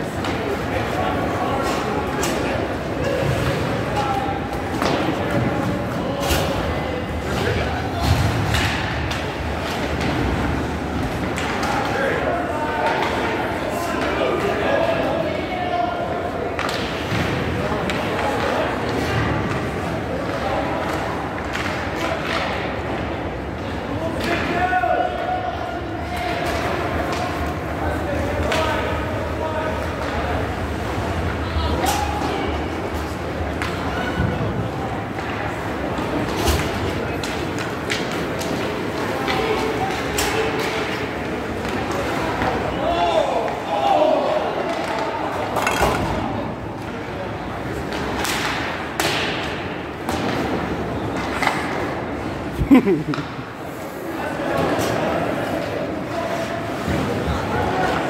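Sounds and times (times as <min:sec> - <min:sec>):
indistinct shouting and talk: 0:00.0 - 0:58.0.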